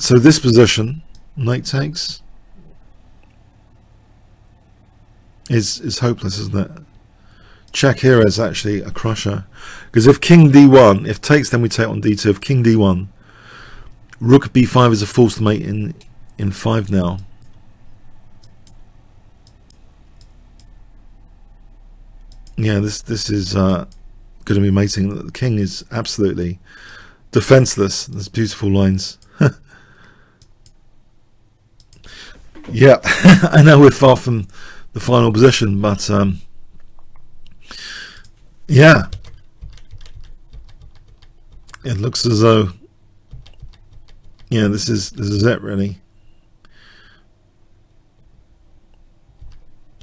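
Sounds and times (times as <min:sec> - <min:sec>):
computer mouse clicking: 0:18.4 - 0:18.8, 0:19.4 - 0:20.8, 0:22.2 - 0:22.6, 0:31.8 - 0:32.1, 0:39.2 - 0:41.8, 0:43.3 - 0:44.5.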